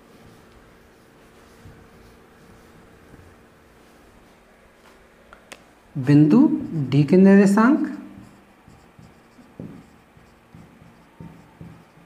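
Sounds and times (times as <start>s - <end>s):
marker pen on whiteboard: 0.0s - 4.3s, 6.0s - 12.0s.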